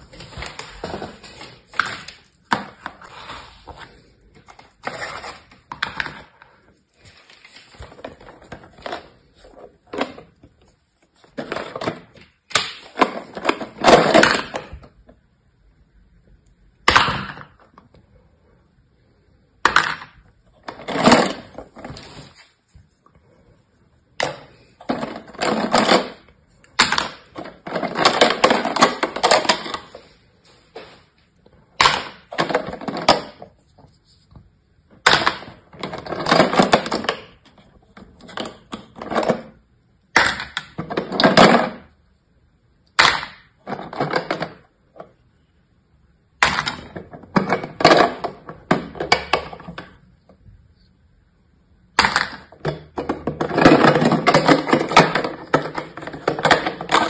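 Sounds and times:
plastic jar of moulds rattling: 19.7s - 22.4s, 24.2s - 30.2s, 31.8s - 33.6s, 35.0s - 39.6s, 43.0s - 45.1s, 52.0s - 57.0s.

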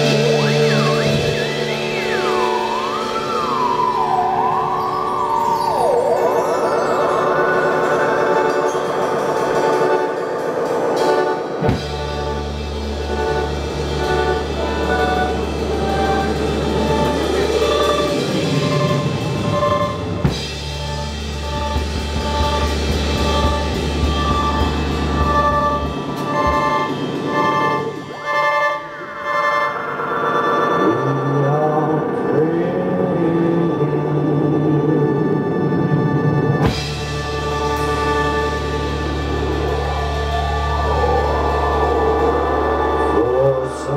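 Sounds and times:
deep electronic drone: 0.0s - 43.9s
siren-like electronic pitch sweeps: 0.0s - 43.9s.

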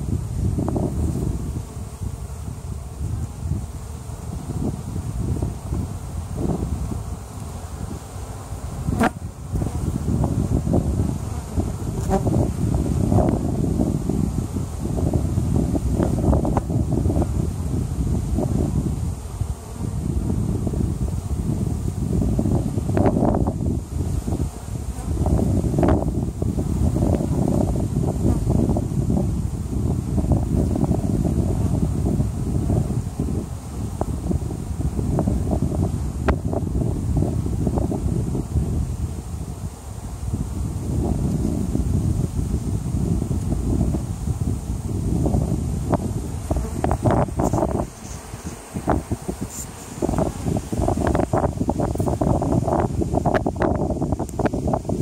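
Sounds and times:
honey bees buzzing: 0.0s - 55.0s.

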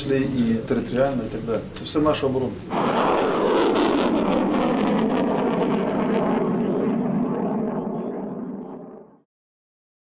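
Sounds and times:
rocket motor roaring with crackling: 2.7s - 9.2s.

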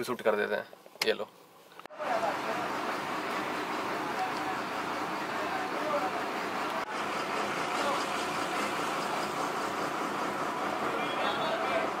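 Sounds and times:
vehicle engine running: 1.9s - 12.0s.

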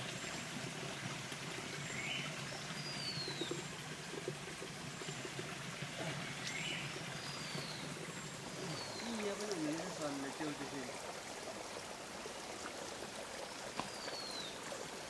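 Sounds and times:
stream trickling: 0.0s - 15.0s.

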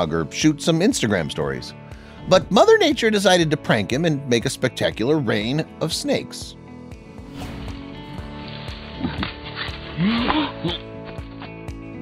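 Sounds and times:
background music: 0.0s - 12.0s
feet rustling in forest litter: 7.9s - 10.0s.

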